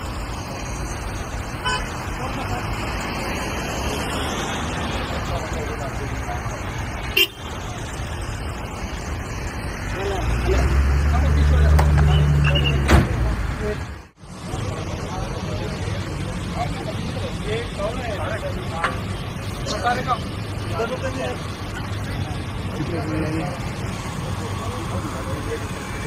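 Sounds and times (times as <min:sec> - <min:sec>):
car engines running: 0:00.0 - 0:26.0
people's voices: 0:01.7 - 0:26.0.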